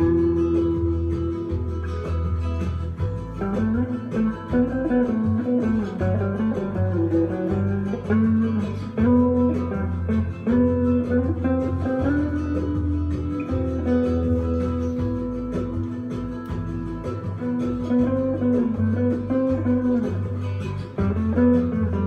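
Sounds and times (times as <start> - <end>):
electric guitar melody: 0.0 - 22.0
low bass line: 0.0 - 22.0.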